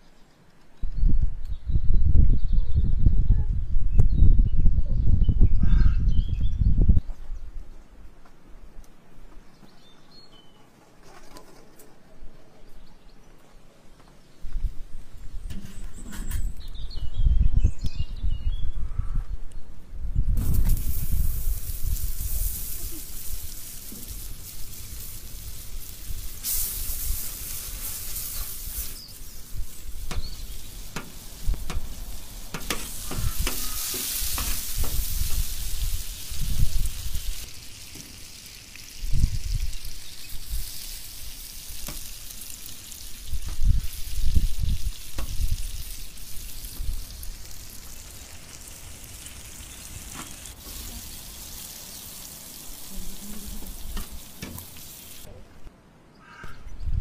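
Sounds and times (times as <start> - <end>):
butter and eggs sizzling: 20.4 - 55.3.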